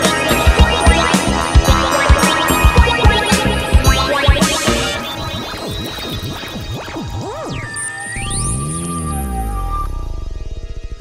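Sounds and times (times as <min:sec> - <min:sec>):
sustained synth backing: 0:00.0 - 0:11.0
swooping synthesizer tones: 0:00.0 - 0:11.0.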